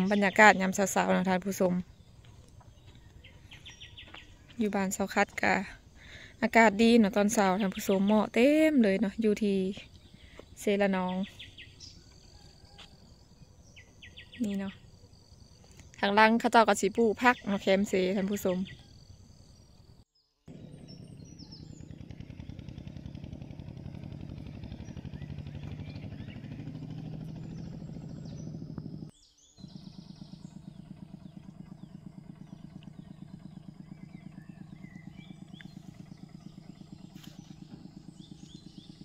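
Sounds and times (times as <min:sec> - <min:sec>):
small engine running: 0:00.0 - 0:39.0.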